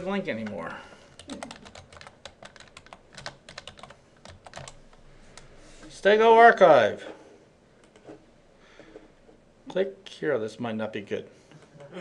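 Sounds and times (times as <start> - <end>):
computer keyboard typing: 0.4 - 4.8.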